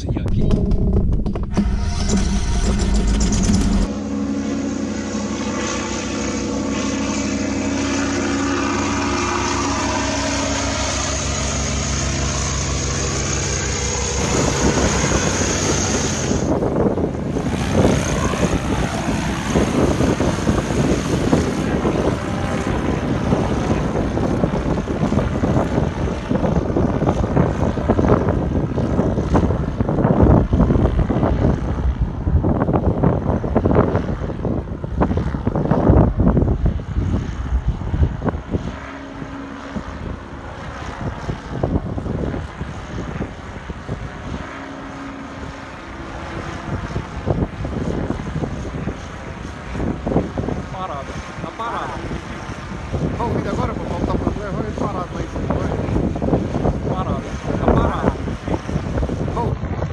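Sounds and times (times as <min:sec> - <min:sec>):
small engine and propeller: 0:00.0 - 0:59.9.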